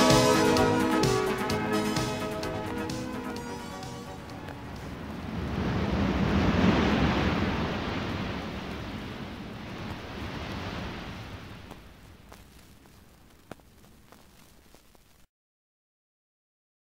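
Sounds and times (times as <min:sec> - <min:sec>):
sea surf wave rushing: 0:00.0 - 0:12.4.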